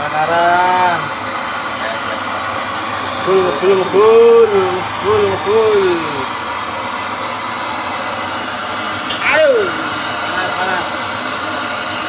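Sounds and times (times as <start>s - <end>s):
gas burner rushing: 0.0s - 12.0s
person calling out: 3.3s - 6.3s, 9.1s - 9.9s.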